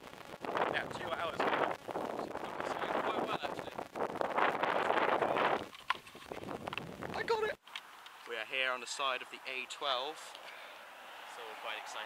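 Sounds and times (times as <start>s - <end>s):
wind buffeting microphone: 0.1s - 7.6s
indistinct voices talking: 0.7s - 5.7s.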